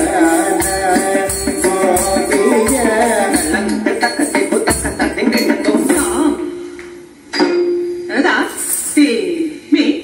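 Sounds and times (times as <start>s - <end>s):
person singing: 0.0s - 6.5s.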